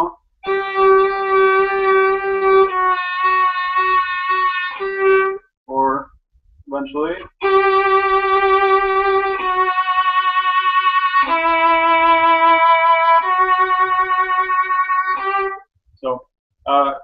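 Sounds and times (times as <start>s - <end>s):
violin bowed notes with vibrato: 0.0s - 5.4s, 7.4s - 15.6s.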